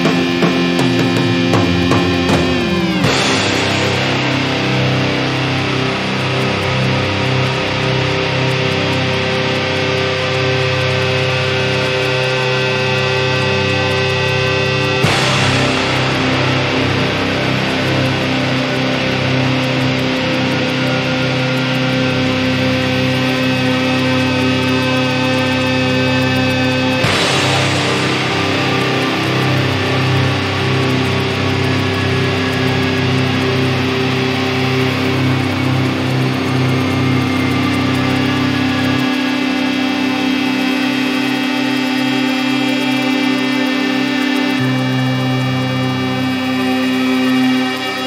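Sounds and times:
distorted electric guitar chord: 0:00.0 - 0:48.0.

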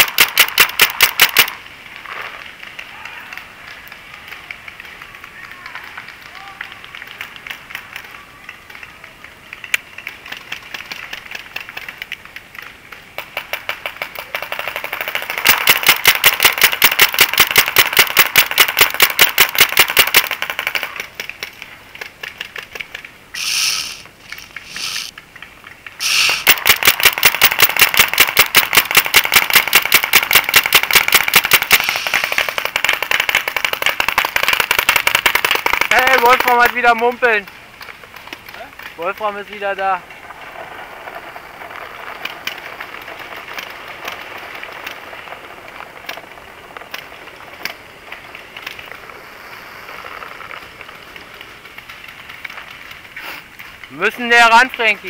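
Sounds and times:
paintball markers firing rapidly: 0:00.0 - 0:01.6, 0:09.8 - 0:25.1, 0:26.0 - 0:40.0
short hisses: 0:23.3 - 0:25.1, 0:26.0 - 0:26.5, 0:31.8 - 0:32.6, 0:53.2 - 0:53.5.

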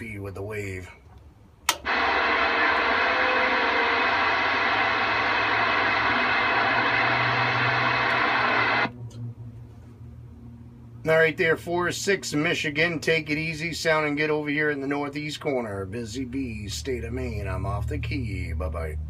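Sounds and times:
low hum: 0:01.6 - 0:19.0
sharp click: 0:01.7 - 0:02.0
radio static hiss: 0:01.7 - 0:08.9.

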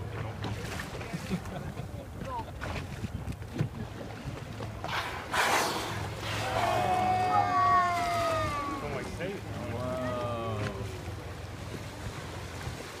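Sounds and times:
boat engine running: 0:00.0 - 0:13.0
water washing: 0:00.0 - 0:13.0
wind: 0:00.0 - 0:13.0
people calling out: 0:06.4 - 0:09.0.

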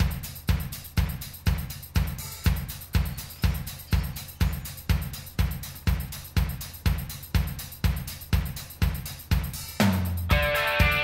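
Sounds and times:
drum kit beat with kick drum: 0:00.0 - 0:11.0.

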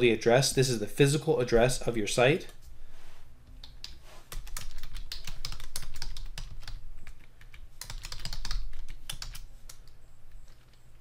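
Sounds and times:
keyboard typing: 0:03.6 - 0:11.0.

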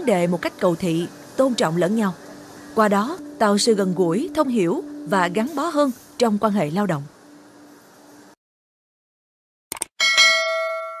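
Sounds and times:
notification bell ding: 0:10.0 - 0:11.0.

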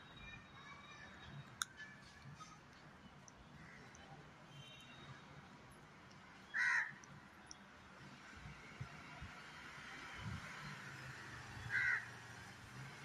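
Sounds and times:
crow cawing: 0:06.5 - 0:07.0, 0:11.7 - 0:12.2.

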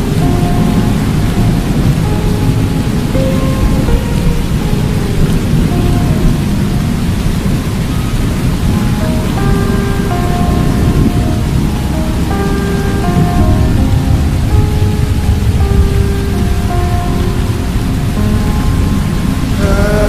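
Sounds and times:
low rumbling thunder: 0:00.0 - 0:20.0
slowed reverb-heavy song: 0:00.0 - 0:20.0
steady rain: 0:00.0 - 0:20.0.

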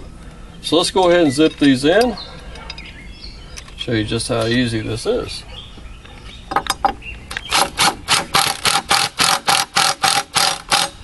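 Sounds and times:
impact driver rattling: 0:07.5 - 0:11.0.

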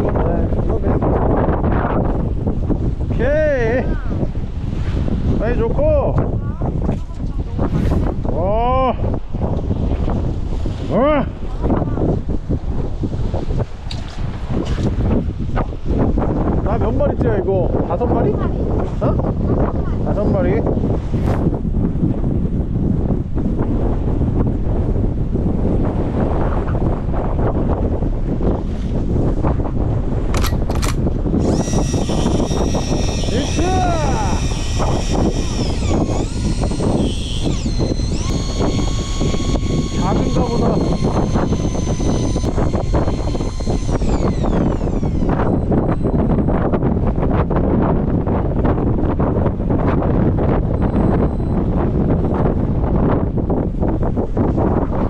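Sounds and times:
wind buffeting microphone: 0:00.0 - 0:55.0
electric fishing reel motor whining: 0:30.4 - 0:46.7.

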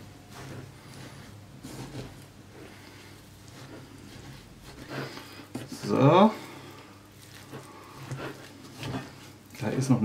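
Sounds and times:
wooden spoon stirring sticky mixture: 0:00.0 - 0:10.0.

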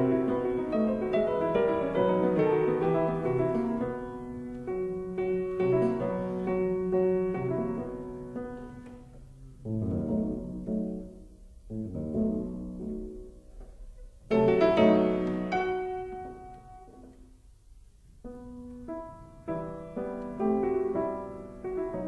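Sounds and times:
solo piano sonata: 0:00.0 - 0:22.0.

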